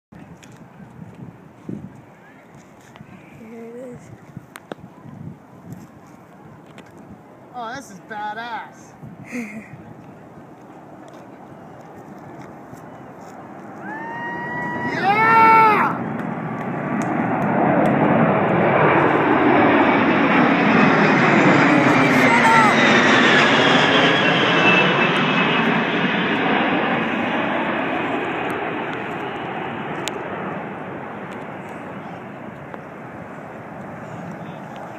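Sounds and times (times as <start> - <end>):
jet aircraft passing overhead: 5.9 - 34.9.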